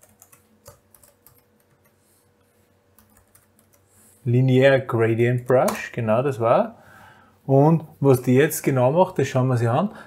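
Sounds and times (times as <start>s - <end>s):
typing on computer keyboard: 0.0s - 2.0s, 3.0s - 3.8s.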